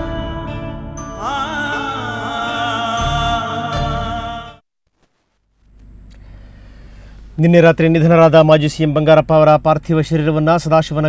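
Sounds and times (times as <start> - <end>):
low steady background hum: 5.2 - 11.0.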